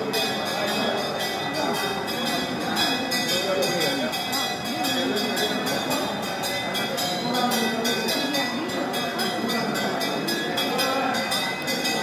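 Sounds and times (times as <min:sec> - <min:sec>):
crowd chanting: 0:00.0 - 0:12.0.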